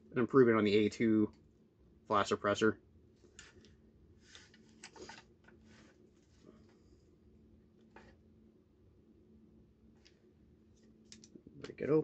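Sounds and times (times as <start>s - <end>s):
faint room hum: 0.0s - 12.0s
soft rustles of handling: 3.1s - 8.3s.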